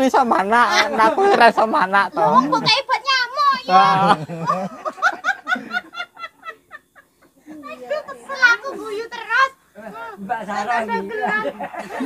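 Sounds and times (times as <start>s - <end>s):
hearty laughter: 3.7s - 7.6s, 11.2s - 12.0s.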